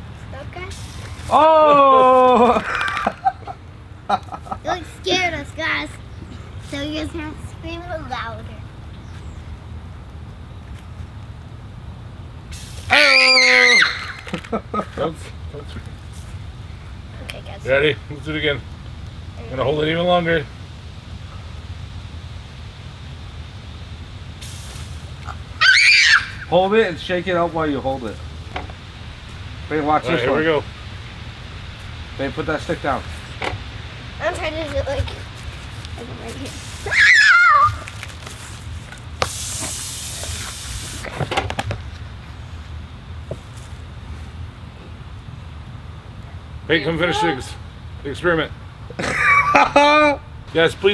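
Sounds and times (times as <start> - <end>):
foam bursting with a hiss: 0.5 - 1.8, 12.4 - 14.3, 23.8 - 26.6, 28.1 - 41.3
child screaming: 12.9 - 14.3, 25.6 - 26.5, 36.8 - 38.0, 46.8 - 47.6.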